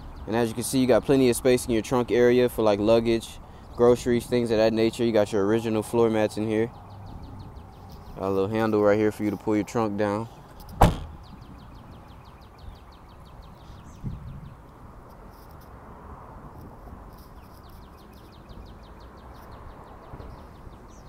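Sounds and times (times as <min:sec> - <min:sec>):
bird chirping: 0:06.3 - 0:09.4, 0:10.2 - 0:14.6, 0:17.2 - 0:21.0
dull thump: 0:10.7 - 0:11.2.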